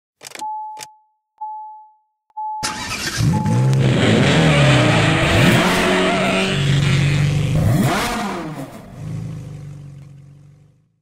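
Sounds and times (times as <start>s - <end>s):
car engine revving: 2.6s - 10.8s.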